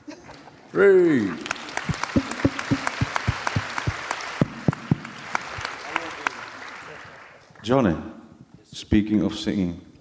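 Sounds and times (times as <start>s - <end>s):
audience applauding: 1.2s - 7.7s
sharp close claps: 1.4s - 7.3s.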